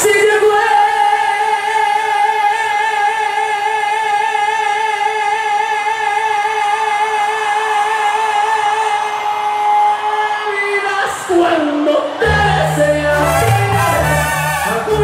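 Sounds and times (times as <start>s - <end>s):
singer holding long note: 11.5s - 15.0s
brass band playing: 12.2s - 15.0s.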